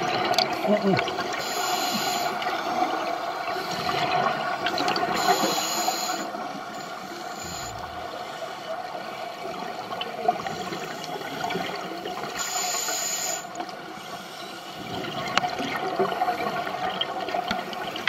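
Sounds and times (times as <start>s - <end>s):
steady underwater hum: 0.0s - 18.0s
diver breathing through regulator: 5.2s - 8.7s
exhaled bubbles rushing: 7.3s - 12.2s.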